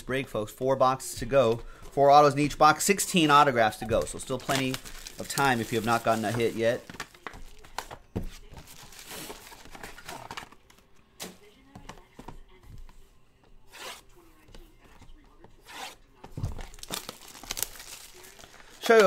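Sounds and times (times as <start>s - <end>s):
plastic wrap tearing and crinkling: 3.9s - 7.9s, 8.6s - 10.8s, 16.4s - 19.0s.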